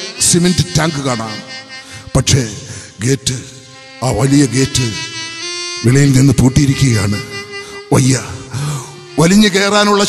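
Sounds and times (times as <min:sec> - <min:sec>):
harmonium and clarinet notes: 0:00.0 - 0:10.0
man declaiming: 0:00.0 - 0:10.0.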